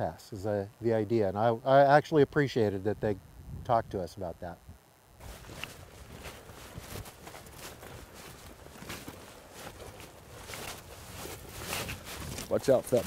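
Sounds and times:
footsteps crunching on gravel: 5.2s - 13.0s.

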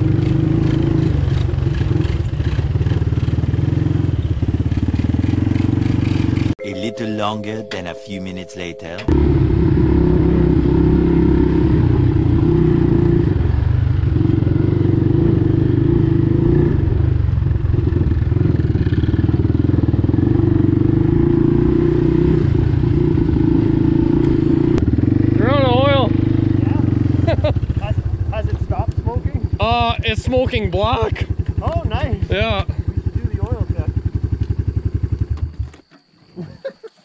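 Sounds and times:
all-terrain vehicle engines running: 0.0s - 6.6s, 9.1s - 35.8s.

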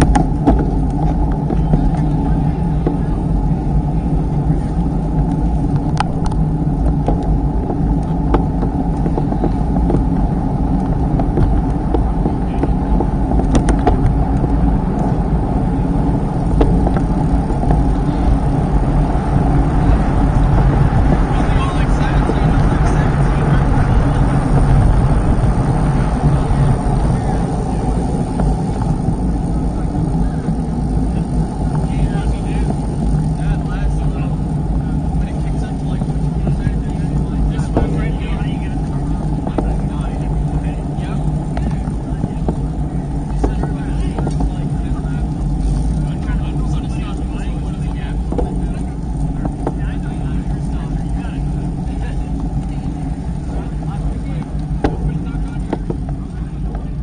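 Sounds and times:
tyre and road noise: 0.0s - 57.0s
wind rushing across microphone: 0.0s - 57.0s.

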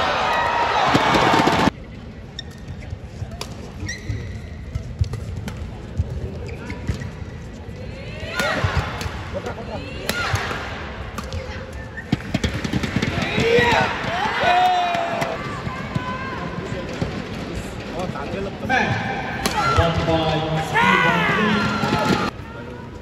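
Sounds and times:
crowd voices: 5.6s - 23.0s
rackets hitting shuttlecock: 8.3s - 13.6s.

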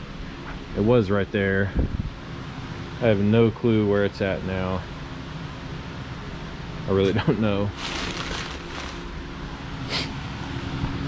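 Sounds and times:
low background hum and hiss: 0.0s - 11.0s.

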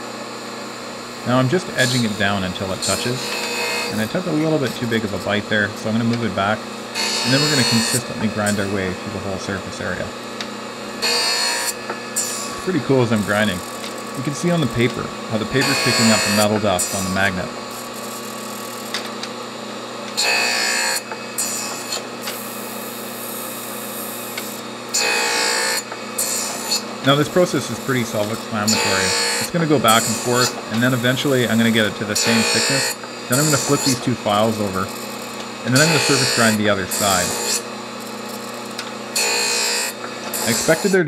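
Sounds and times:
grinder spindle motor humming: 0.0s - 41.0s
abrasive wheel grinding steel: 1.4s - 10.2s, 10.9s - 17.4s, 25.0s - 38.7s, 39.3s - 41.0s.

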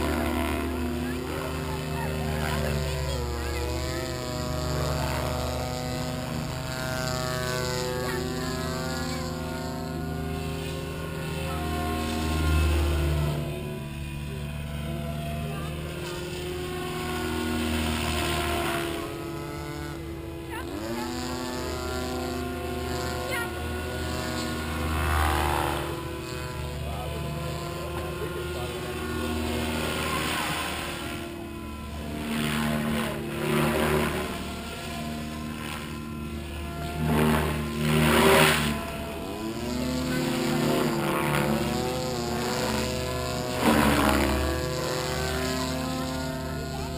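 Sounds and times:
rc helicopter rotor and motor whine: 0.0s - 46.9s.

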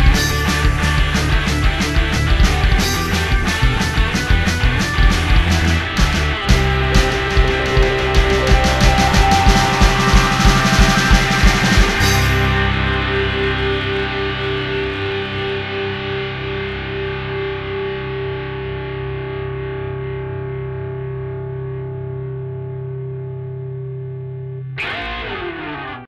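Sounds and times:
distorted electric guitar chord: 0.0s - 26.0s
noisy falling pitch sound: 5.2s - 15.0s.

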